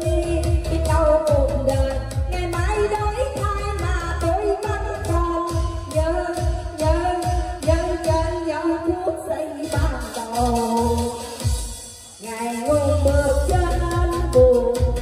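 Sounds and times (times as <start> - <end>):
person singing into a microphone: 0.0 - 11.5, 12.2 - 15.0
amplified pop backing track: 0.0 - 15.0.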